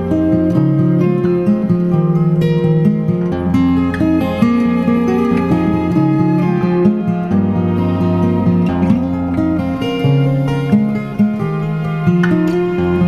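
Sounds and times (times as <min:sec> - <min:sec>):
acoustic guitar music: 0:00.0 - 0:13.0.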